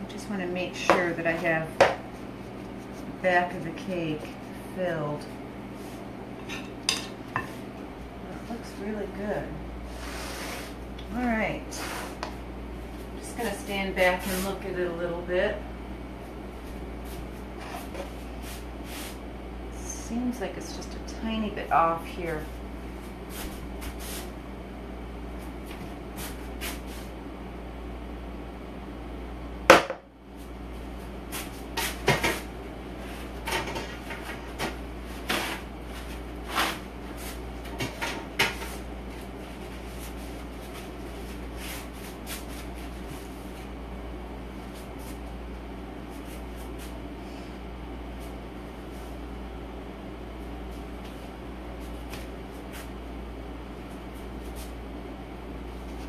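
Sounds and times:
steady low hum: 0:00.0 - 0:56.0.

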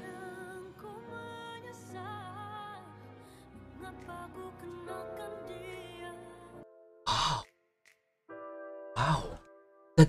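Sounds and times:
pop ballad with female vocals: 0:00.0 - 0:07.4
man sighing: 0:07.1 - 0:07.5, 0:09.0 - 0:09.4.

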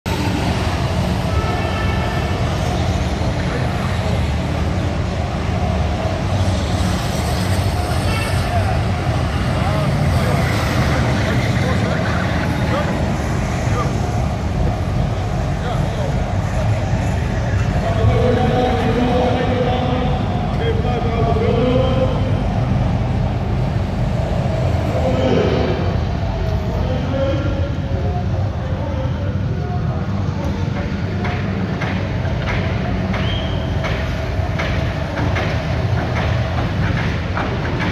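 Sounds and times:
crowd chatter echoing: 0:00.2 - 0:37.4.

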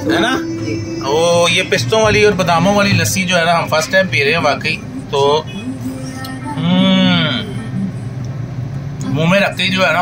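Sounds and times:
steady low hum: 0:00.0 - 0:10.0
man humming appreciatively: 0:06.5 - 0:07.7.

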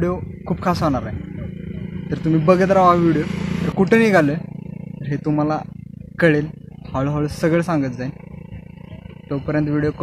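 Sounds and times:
young man speaking: 0:00.0 - 0:08.3, 0:09.0 - 0:10.0.

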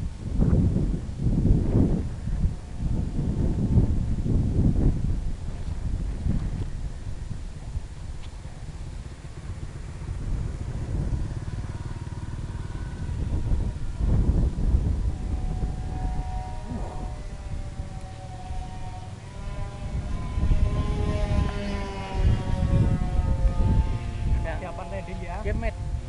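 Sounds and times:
wind rumble on microphone: 0:00.0 - 0:26.0
model plane motors whining: 0:00.9 - 0:26.0.

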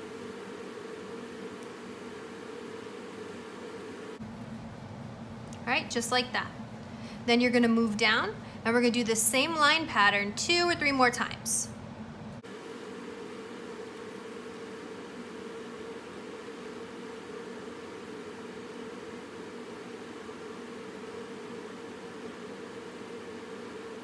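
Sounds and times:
constant low hum: 0:00.0 - 0:24.0
steady background hiss: 0:00.0 - 0:24.0.

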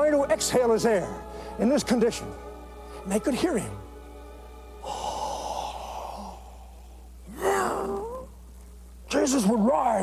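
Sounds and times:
man groaning: 0:07.3 - 0:08.1.

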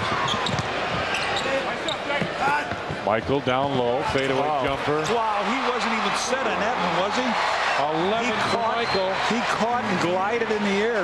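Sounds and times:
basketball bouncing on hardwood: 0:00.1 - 0:01.1.

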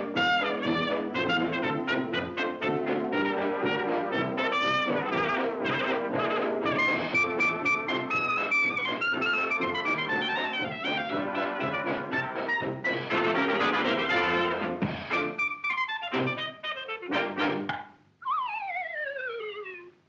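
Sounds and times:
jazz band with trumpet and brass: 0:00.0 - 0:17.7.

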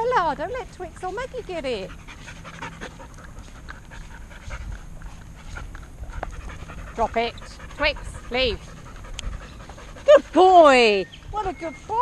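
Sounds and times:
dog panting: 0:00.5 - 0:12.0.

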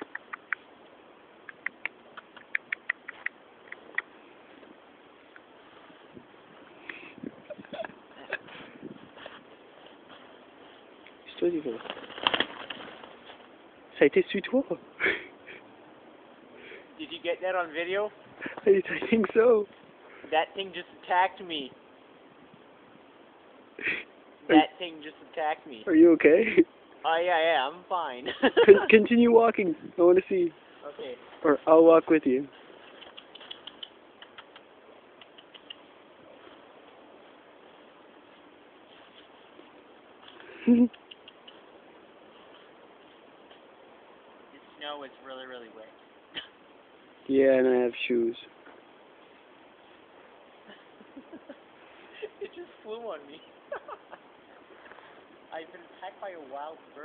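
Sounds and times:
faint clicks: 0:00.0 - 0:00.7, 0:01.4 - 0:04.1, 0:32.8 - 0:35.9, 0:40.2 - 0:41.7
faint ticks: 0:00.0 - 0:00.7, 0:01.4 - 0:04.2, 0:32.8 - 0:35.9, 0:39.8 - 0:41.7
person laughing: 0:07.4 - 0:08.8, 0:15.0 - 0:15.6, 0:28.2 - 0:29.0, 0:40.4 - 0:41.1, 0:50.6 - 0:52.8, 0:53.7 - 0:54.3
bird wings fluttering: 0:11.6 - 0:13.5, 0:32.6 - 0:33.9.

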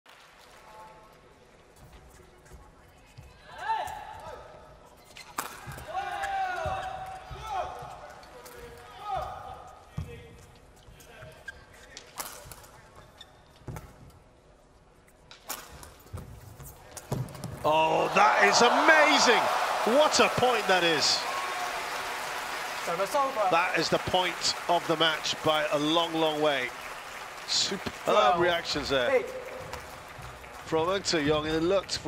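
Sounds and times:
shoes squeaking on court: 0:10.8 - 0:14.1.

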